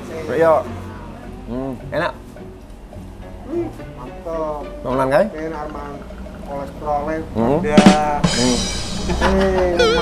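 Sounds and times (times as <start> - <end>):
man talking: 4.0 - 10.0
sharp noise: 7.6 - 10.0.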